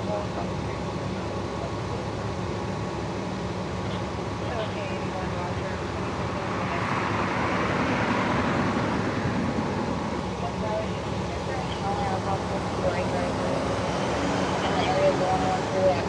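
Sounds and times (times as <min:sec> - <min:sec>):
faint distant voices: 0:00.0 - 0:08.0, 0:09.1 - 0:16.0
emergency vehicle engines idling: 0:00.0 - 0:16.0
traffic-like swell: 0:00.0 - 0:16.0.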